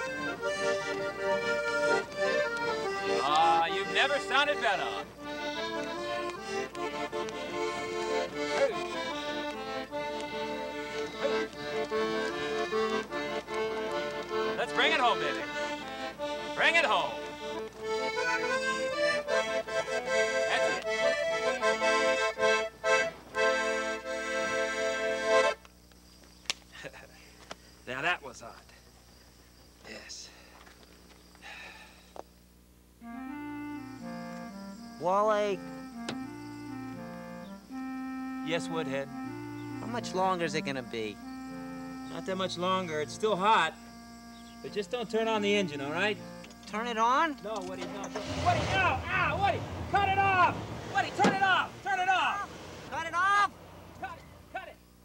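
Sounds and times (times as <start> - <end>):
accordion playing a tune: 0.0 - 25.7, 33.0 - 54.7.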